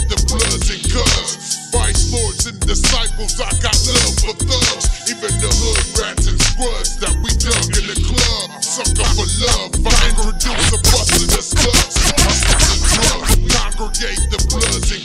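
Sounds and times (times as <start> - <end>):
heavy bass and drums: 0.0 - 15.0
slowed-down rap vocals: 0.0 - 15.0.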